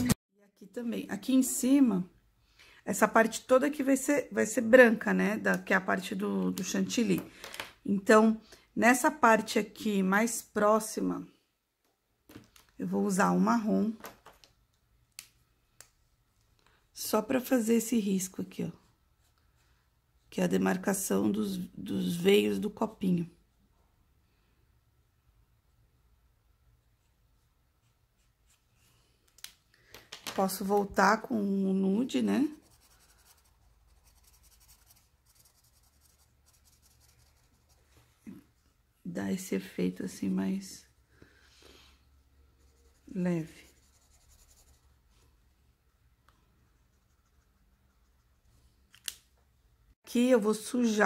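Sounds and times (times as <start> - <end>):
marker scratching on paper: 32.4 - 37.8, 42.5 - 45.0.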